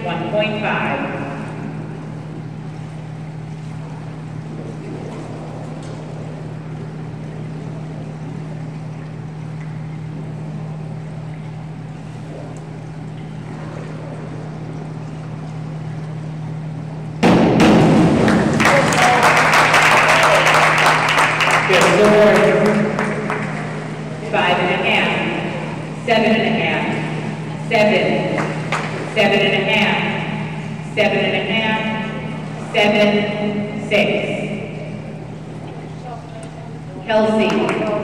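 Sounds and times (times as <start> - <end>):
indoor room noise: 0.0 - 38.0
steady low hum: 0.0 - 38.0
spectators applauding and cheering: 18.2 - 24.1.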